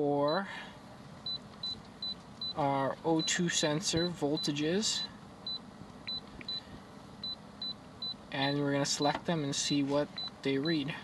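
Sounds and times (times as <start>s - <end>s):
faint engine hum: 0.0s - 11.0s
short high key beeps: 1.2s - 8.6s.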